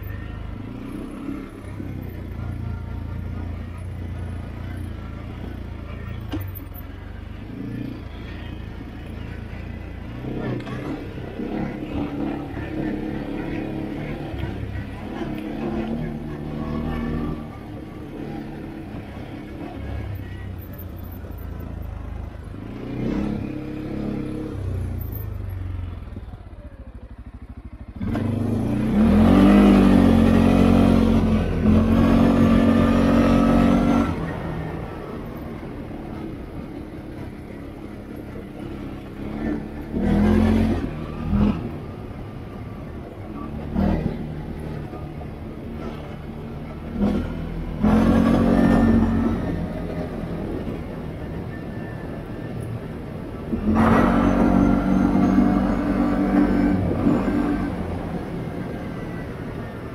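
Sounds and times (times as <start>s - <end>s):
atv engine revving: 0.0s - 59.9s.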